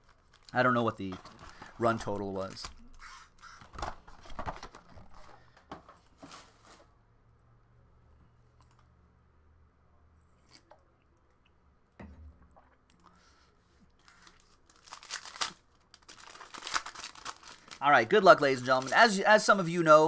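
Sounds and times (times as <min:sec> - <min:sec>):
foil wrapper crinkling: 0:00.0 - 0:02.8, 0:14.0 - 0:19.2.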